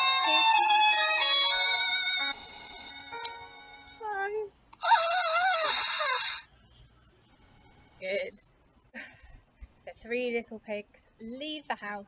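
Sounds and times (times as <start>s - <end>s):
violin music: 0.0s - 4.1s.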